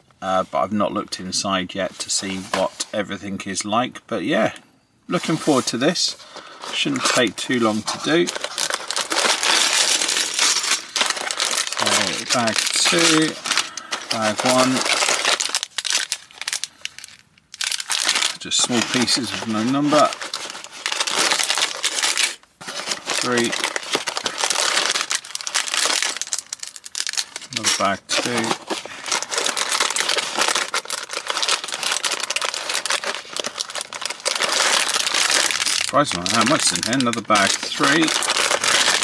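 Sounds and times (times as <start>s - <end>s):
plastic bags crinkling: 5.2s - 39.0s.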